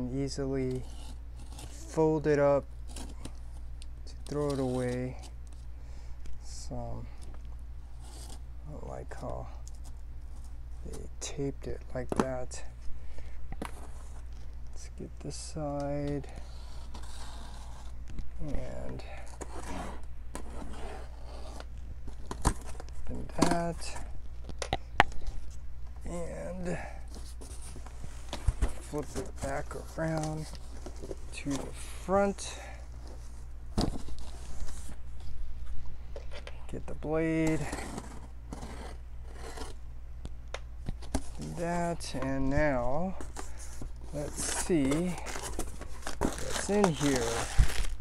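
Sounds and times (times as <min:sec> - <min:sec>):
knife slitting packing tape: 0:44.4 - 0:48.0.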